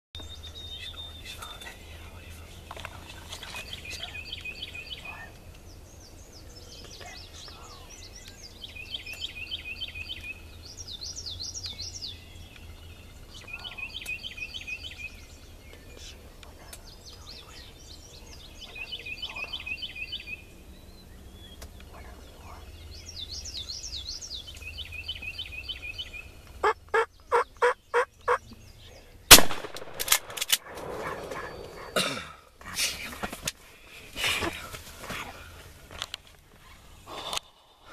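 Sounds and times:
rustle: 0.2 - 26.8, 28.2 - 37.9
sharp turkey calls: 26.6 - 28.4, 30.6 - 32.0
turkey gobbling: 26.6 - 28.4, 30.6 - 32.0
loud gunshot: 29.3 - 31.4.

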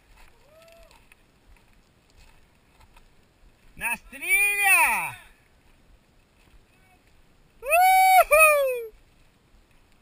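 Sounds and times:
high-pitched whooping shout: 7.6 - 8.9.

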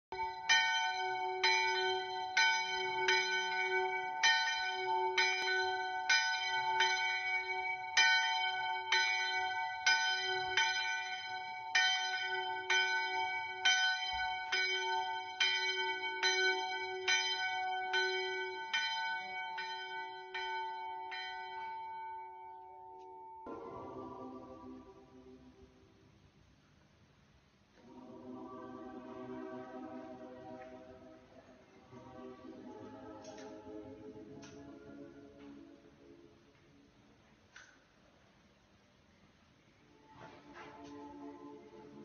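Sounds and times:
church bell tolling: 0.1 - 25.8.

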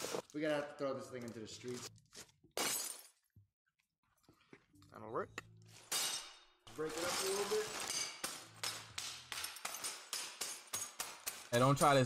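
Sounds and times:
broken glass clinking: 5.8 - 11.6
hammer striking glass in bag: 5.9 - 11.6.

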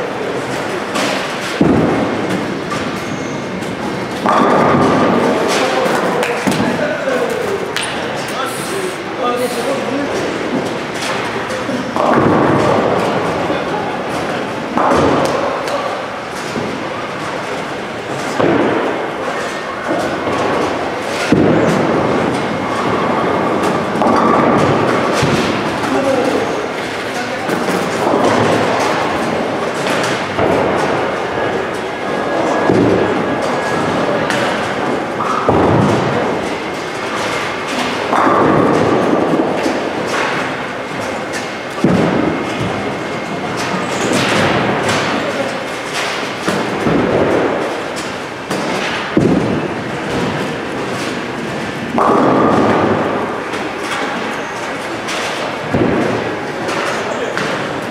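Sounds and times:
bowling alley din: 0.0 - 57.9
bowling pins crashing: 0.3 - 8.2, 10.2 - 57.9.

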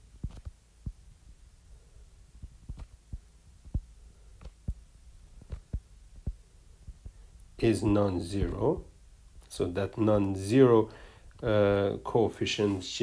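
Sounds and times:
faint low hum: 0.0 - 13.0.

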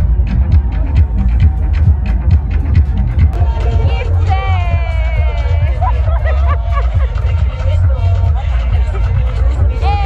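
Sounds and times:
crowd chatter: 0.0 - 10.0
live music through sound system: 0.0 - 10.0
lead voice singing: 3.4 - 10.0.

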